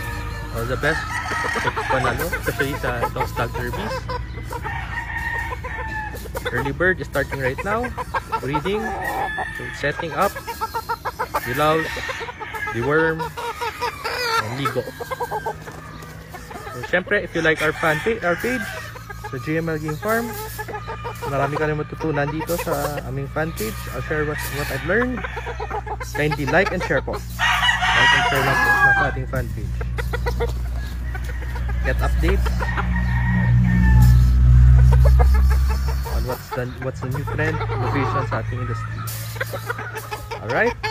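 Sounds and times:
chicken clucking: 0:00.0 - 0:40.9.

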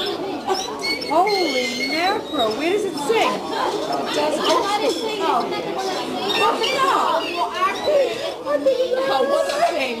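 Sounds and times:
dining room chatter: 0:00.0 - 0:10.0
people talking at table: 0:00.0 - 0:10.0.

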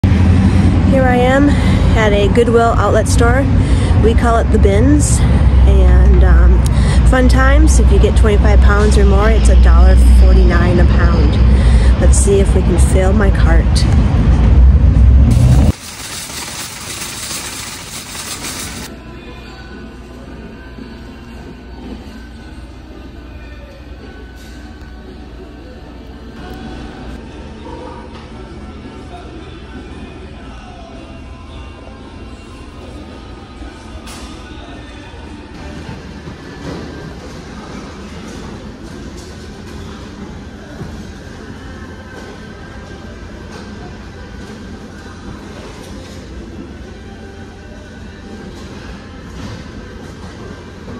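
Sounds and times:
store background noise: 0:00.0 - 0:50.9
low rumble: 0:09.5 - 0:18.9
shopping cart rattling over asphalt: 0:15.3 - 0:18.9.

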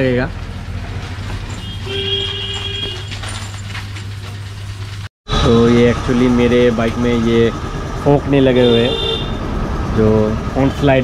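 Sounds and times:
vehicle engine humming: 0:00.0 - 0:11.0
vehicle horn: 0:01.6 - 0:03.2, 0:08.5 - 0:09.4.

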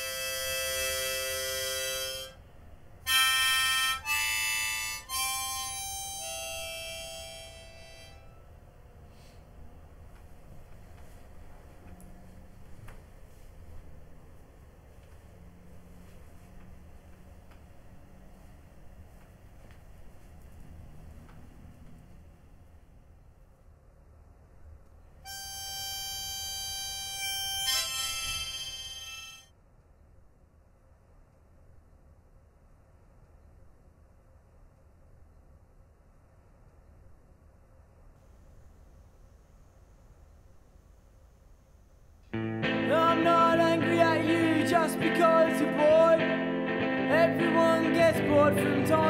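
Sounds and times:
harmonica chord: 0:00.0 - 0:08.5, 0:25.2 - 0:29.5, 0:42.4 - 0:49.0.

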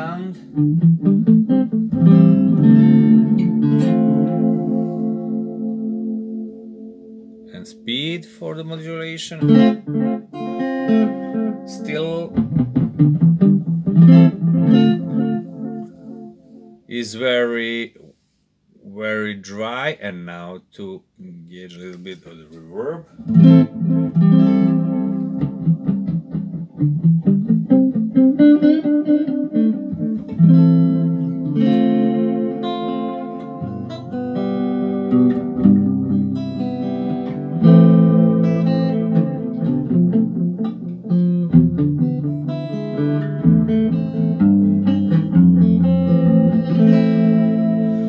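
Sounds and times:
guitar with reverb and delay: 0:00.0 - 0:17.0, 0:23.2 - 0:48.0.

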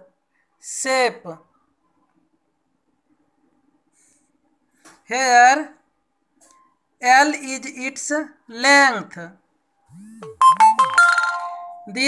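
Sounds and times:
electronic chime: 0:10.0 - 0:11.9.

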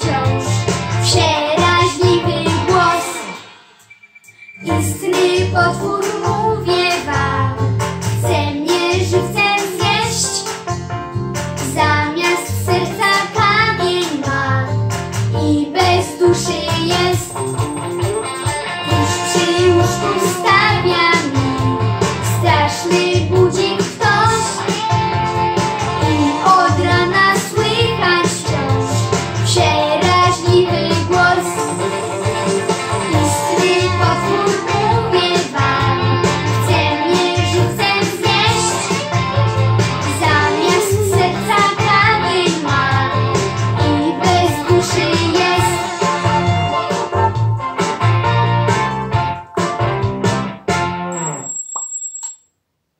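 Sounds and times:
young boy singing: 0:00.0 - 0:03.3, 0:04.6 - 0:07.5, 0:11.7 - 0:14.7, 0:18.9 - 0:24.6, 0:26.0 - 0:28.9, 0:33.1 - 0:38.8, 0:40.1 - 0:43.1
instrumental accompaniment: 0:16.6 - 0:51.8.

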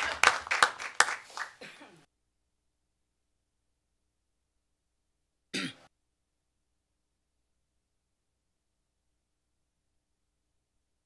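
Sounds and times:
person clearing throat: 0:01.6 - 0:02.0, 0:05.5 - 0:05.9.

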